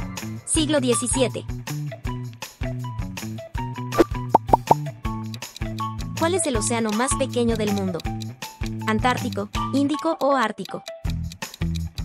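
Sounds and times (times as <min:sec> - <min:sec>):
upbeat background music: 0:00.0 - 0:12.0
pop sound effects: 0:04.0 - 0:04.8.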